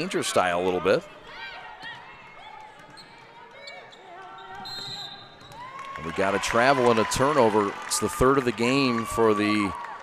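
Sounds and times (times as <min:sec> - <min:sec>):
referee's whistle: 0:03.8 - 0:05.6.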